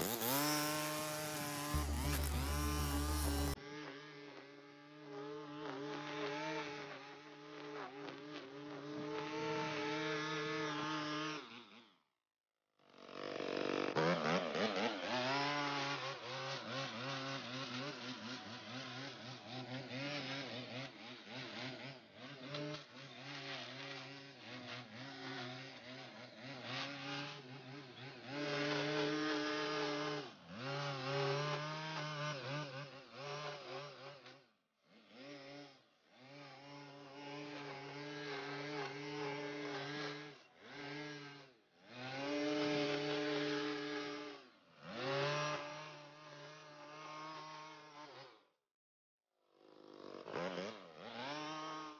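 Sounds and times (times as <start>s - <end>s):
string trimmer engine revving: 0.0s - 3.8s, 13.2s - 34.3s, 35.0s - 48.2s, 49.8s - 51.9s.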